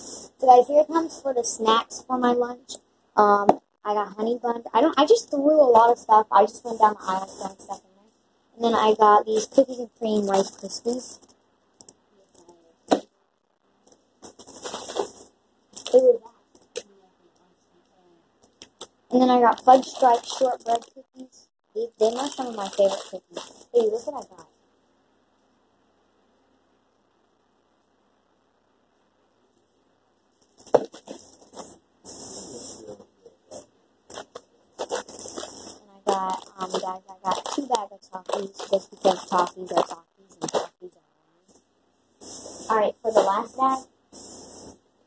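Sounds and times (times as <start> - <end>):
plastic crinkling and rustling: 14.2 - 16.8, 18.6 - 21.2, 21.8 - 24.4, 30.3 - 31.8, 34.1 - 40.8.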